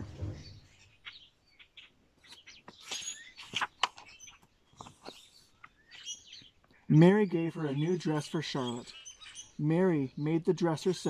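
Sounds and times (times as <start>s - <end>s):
wild birds chirping: 0.0s - 11.0s
paper page turning: 2.7s - 4.1s.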